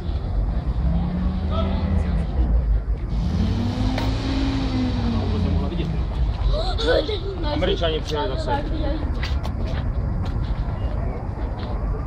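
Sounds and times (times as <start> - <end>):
engine revving: 0.6 - 6.1.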